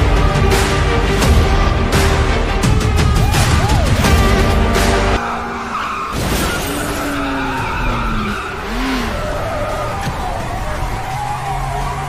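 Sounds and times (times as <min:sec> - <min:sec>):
trailer music: 0:00.0 - 0:12.0
car engines: 0:04.0 - 0:12.0
tyres skidding and squealing: 0:04.9 - 0:12.0.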